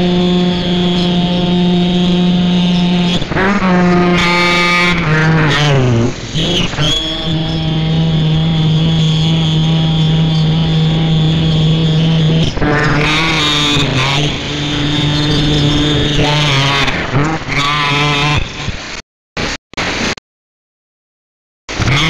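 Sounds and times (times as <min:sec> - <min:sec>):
loud pitched drone: 0:00.0 - 0:20.1, 0:21.7 - 0:22.0.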